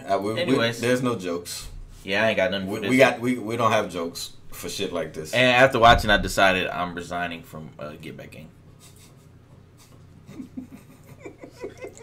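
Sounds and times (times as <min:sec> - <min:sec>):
man chuckling: 0:08.8 - 0:12.0.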